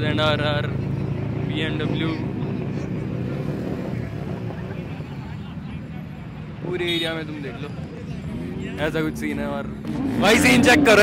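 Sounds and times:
crowd chatter: 0.0s - 11.0s
motorcycle engines idling: 0.0s - 11.0s.

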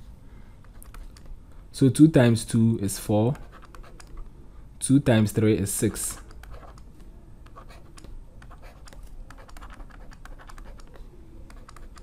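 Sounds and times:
stylus clicks: 0.6s - 1.4s, 3.4s - 4.3s, 6.1s - 12.0s
stylus scratching on tablet: 3.2s - 4.3s, 5.8s - 12.0s.

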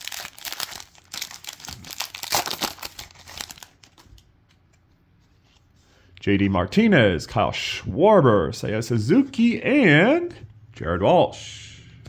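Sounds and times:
foil wrapper tearing and crinkling: 0.0s - 4.0s.

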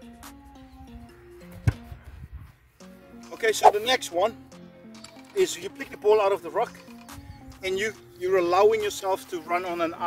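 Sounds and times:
background music stepped melody: 0.0s - 10.0s
boot kicking ball thud: 1.6s - 2.0s.

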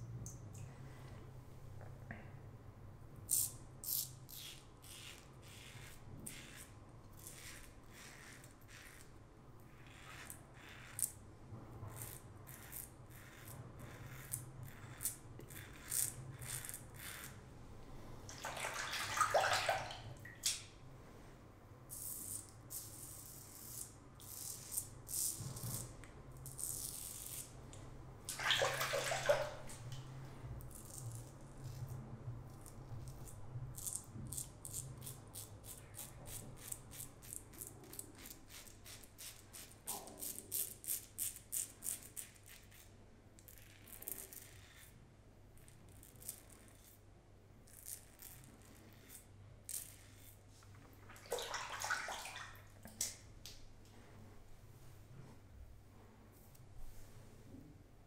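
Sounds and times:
razor scraping stubble: 4.5s - 9.1s, 11.9s - 17.4s
running tap water: 18.3s - 20.2s, 28.3s - 29.8s, 51.1s - 52.7s.

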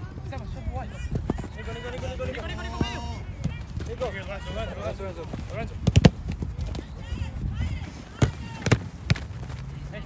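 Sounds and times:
players shouting: 0.8s - 5.3s, 6.9s - 10.0s.

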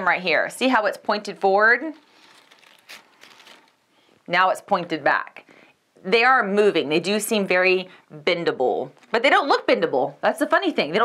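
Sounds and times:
artificial leaves rustling: 0.8s - 4.2s
brief crackle: 2.0s - 3.8s.

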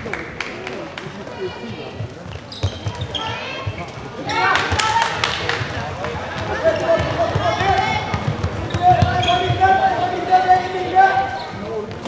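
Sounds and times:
players shouting: 4.2s - 11.6s.

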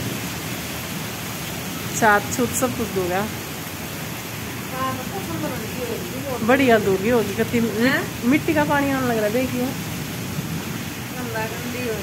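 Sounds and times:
heavy rain in strong wind: 0.0s - 12.0s.

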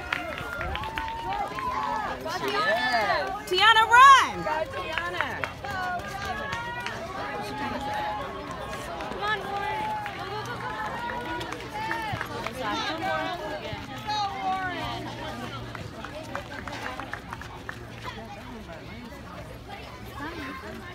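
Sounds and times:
spectators shouting and cheering: 0.0s - 16.2s.

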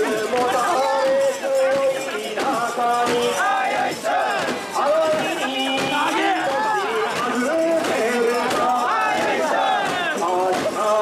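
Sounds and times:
crowd of men chanting: 0.0s - 11.0s.

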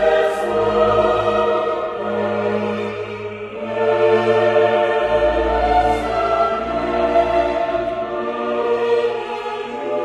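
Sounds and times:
choir voices over orchestra: 0.0s - 10.0s.

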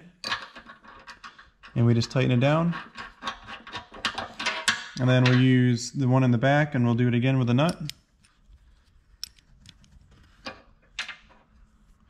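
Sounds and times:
metal clicks of wrench and bolt: 7.6s - 8.4s, 9.2s - 9.8s.

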